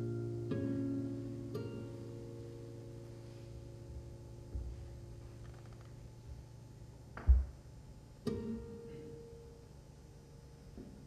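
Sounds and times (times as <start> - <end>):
plucked guitar note: 0.0 - 3.0.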